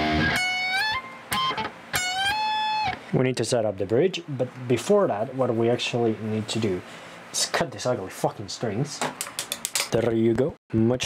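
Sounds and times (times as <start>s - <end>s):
electric guitar lead phrase: 0.0s - 3.0s.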